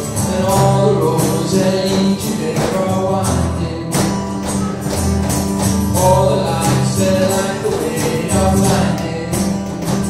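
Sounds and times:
person singing: 0:00.0 - 0:05.0, 0:05.9 - 0:10.0
acoustic guitar strumming: 0:00.0 - 0:10.0.

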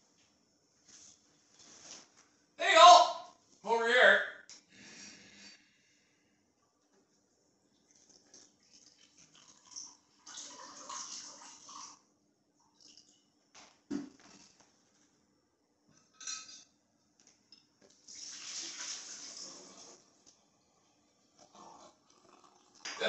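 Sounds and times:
water running from tap: 0:07.9 - 0:12.0, 0:18.1 - 0:20.0.

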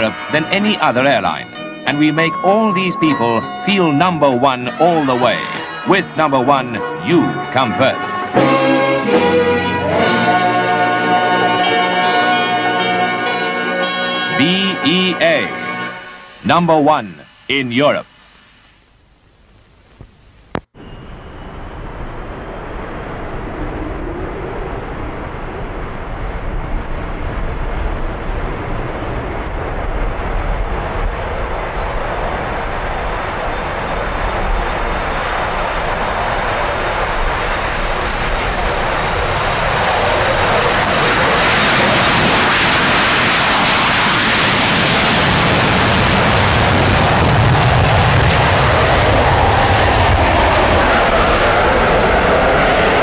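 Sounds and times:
jet engine noise with high whine: 0:20.7 - 0:53.0.

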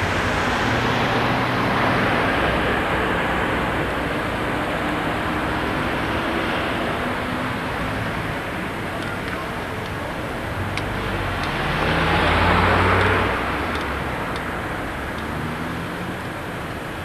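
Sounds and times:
cars driving past: 0:00.0 - 0:17.0.

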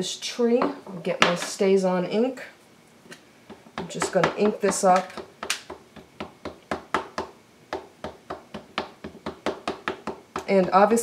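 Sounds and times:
ink pad tapping rubber stamp: 0:03.5 - 0:10.8.

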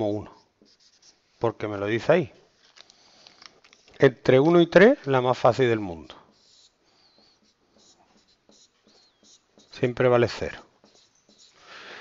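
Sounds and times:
marker squeaks: 0:00.0 - 0:01.4, 0:03.5 - 0:11.8
marker writing on whiteboard: 0:00.0 - 0:01.5, 0:03.7 - 0:11.7.

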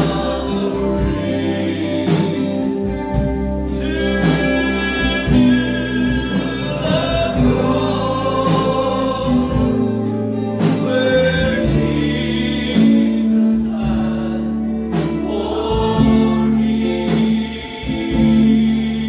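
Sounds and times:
group singing gospel music: 0:00.0 - 0:19.0
instrumental accompaniment: 0:00.0 - 0:19.0.

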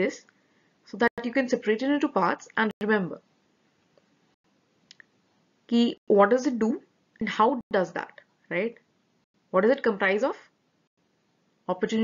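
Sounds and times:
person speaking: 0:00.9 - 0:03.2, 0:05.7 - 0:08.8.

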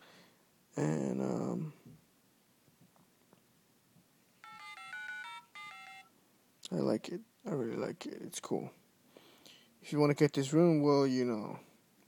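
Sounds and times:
keypad dial tones: 0:04.4 - 0:06.1.

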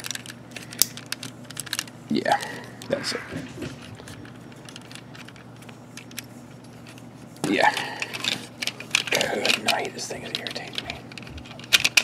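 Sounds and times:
steady low hum: 0:00.0 - 0:12.0
plastic toy parts clicking: 0:08.0 - 0:12.0.

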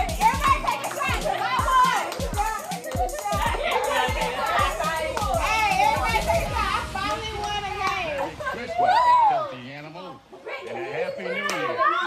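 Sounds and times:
women calling out and singing: 0:00.0 - 0:08.3
party music with deep bass: 0:00.0 - 0:09.5.

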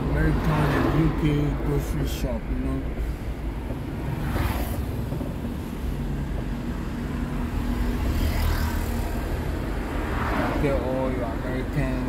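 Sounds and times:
car engine rumbling: 0:00.0 - 0:12.0
road traffic noise: 0:00.0 - 0:12.0.

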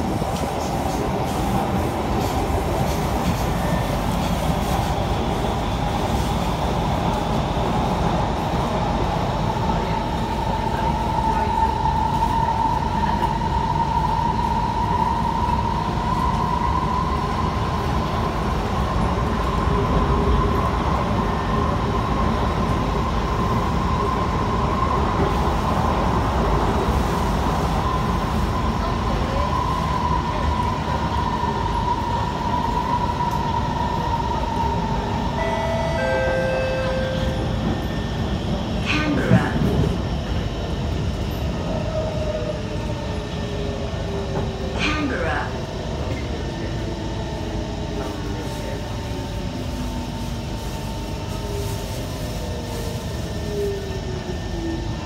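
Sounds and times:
metro train rumble and whine: 0:00.0 - 0:55.0.

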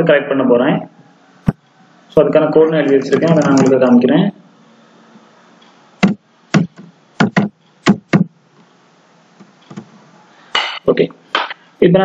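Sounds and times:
man speaking: 0:02.1 - 0:04.4, 0:10.8 - 0:11.2, 0:11.8 - 0:12.0.

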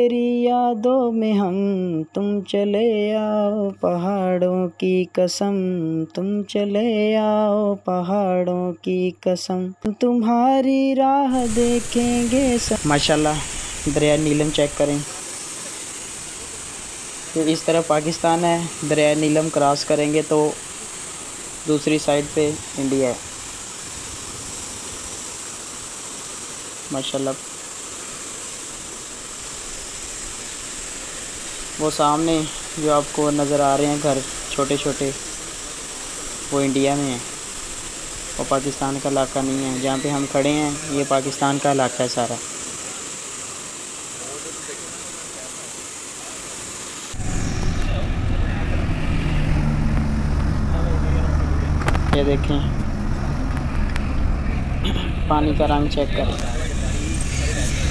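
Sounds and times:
river rushing over rapids: 0:11.3 - 0:57.9
low rumble with hum: 0:11.4 - 0:14.8, 0:47.2 - 0:57.9.

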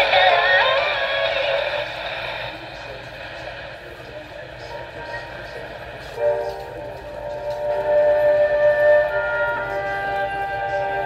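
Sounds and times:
music from small speaker: 0:00.0 - 0:02.5, 0:04.7 - 0:11.0.

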